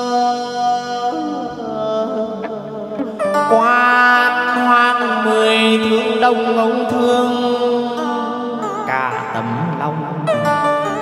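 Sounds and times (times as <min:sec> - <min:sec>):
singer holding a long note: 0:00.0 - 0:11.0.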